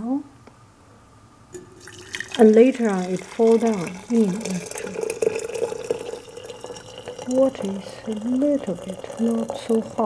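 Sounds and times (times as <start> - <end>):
water pouring into ceramic teapot: 1.6 - 10.0.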